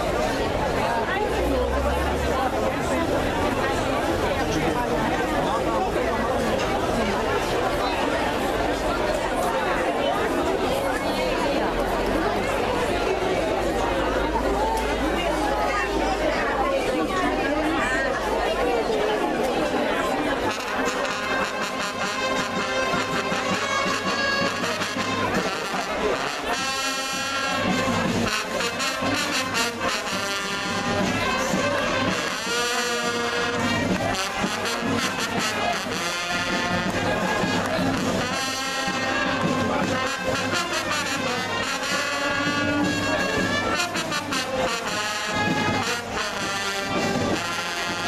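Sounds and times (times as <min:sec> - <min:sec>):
voices chattering: 0:00.0 - 0:48.0
brass wind band playing: 0:20.1 - 0:48.0.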